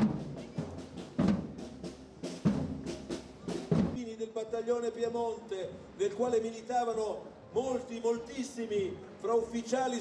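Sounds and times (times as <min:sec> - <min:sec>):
heavy drum strokes: 0:00.0 - 0:04.0
lighter drumbeats: 0:00.0 - 0:04.1.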